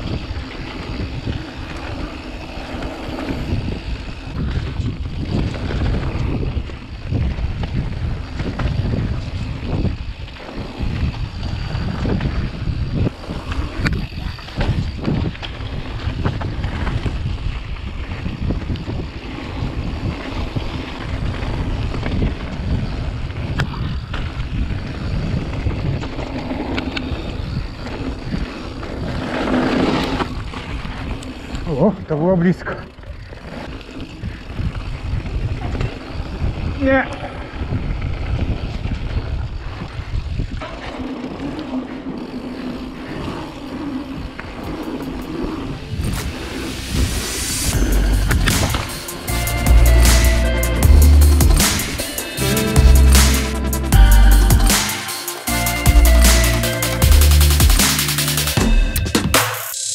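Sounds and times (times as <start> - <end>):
wind buffeting microphone: 0.0 - 49.3.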